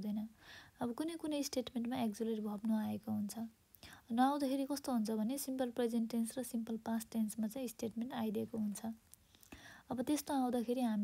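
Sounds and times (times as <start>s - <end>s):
person talking: 0.0s - 3.5s, 4.1s - 9.0s, 9.9s - 11.0s.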